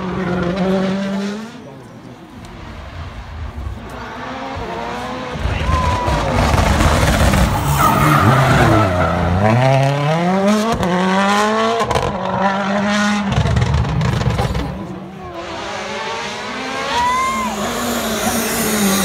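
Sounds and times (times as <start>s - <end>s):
rally car engine passing: 0.0s - 19.0s.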